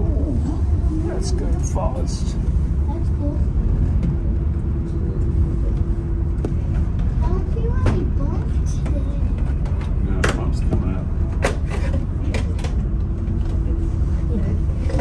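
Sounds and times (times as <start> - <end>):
cable car cabin rumbling: 0.0 - 15.0.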